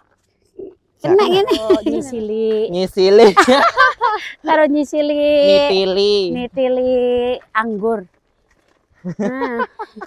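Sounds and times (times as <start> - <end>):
broken voiced sounds: 5.4 - 6.5
woman humming or laughing: 9.1 - 10.0.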